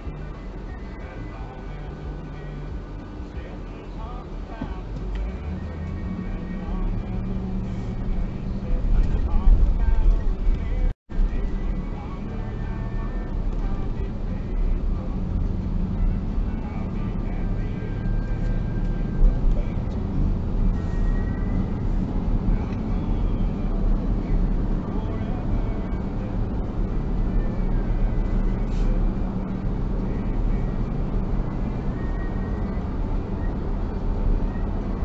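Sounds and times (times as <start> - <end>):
car road and engine rumble: 0.0 - 35.0.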